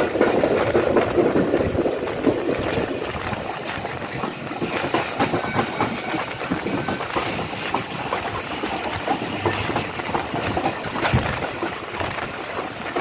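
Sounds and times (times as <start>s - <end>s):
train rumbling and rattling: 0.0s - 13.0s
wheels clicking over rail joints: 0.0s - 13.0s.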